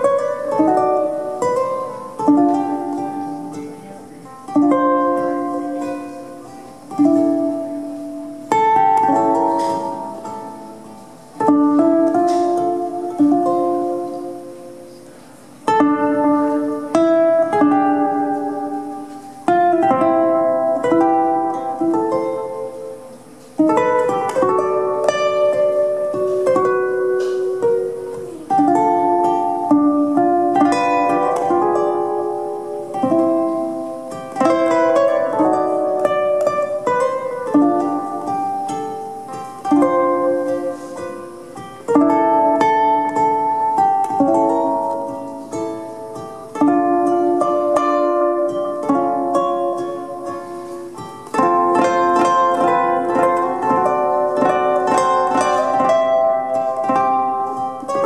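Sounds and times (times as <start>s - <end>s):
solo ukulele melody: 0.0s - 58.0s.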